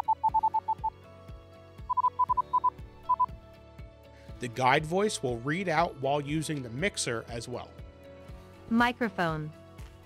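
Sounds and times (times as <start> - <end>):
short quick beeps: 0.0 - 0.9, 1.9 - 3.3
soft background music: 0.0 - 10.0.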